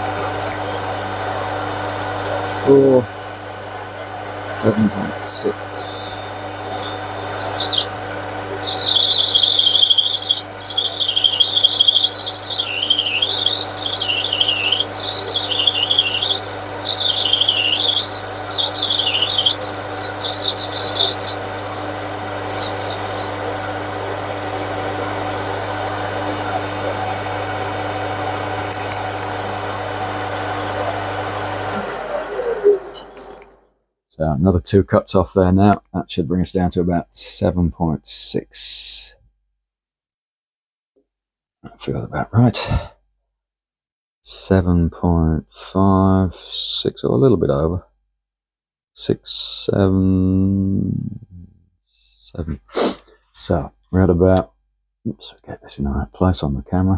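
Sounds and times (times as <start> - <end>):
high-pitched cutting whine: 4.4 - 28.5
lathe motor hum: 5.7 - 28.5.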